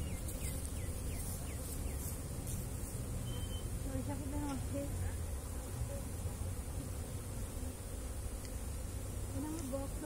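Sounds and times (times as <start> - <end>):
honeybees buzzing: 0.0 - 10.0.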